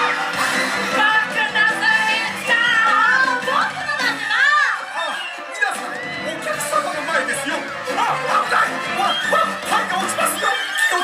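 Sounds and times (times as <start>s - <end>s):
performers' voices: 0.0s - 11.0s
stage show music: 0.0s - 11.0s.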